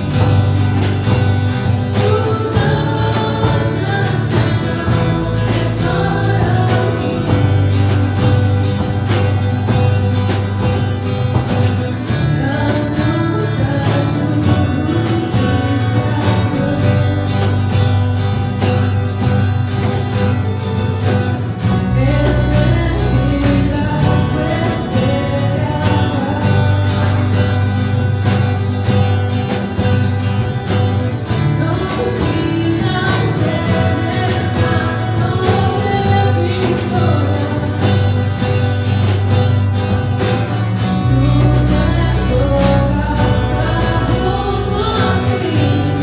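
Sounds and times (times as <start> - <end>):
woman singing lead: 0.0 - 10.3, 11.0 - 18.2, 21.6 - 28.6, 31.2 - 39.7, 40.3 - 46.0
drum kit: 0.0 - 46.0
electric guitar: 0.0 - 46.0
steady low bass notes: 0.0 - 46.0
strummed acoustic guitar: 0.0 - 46.0.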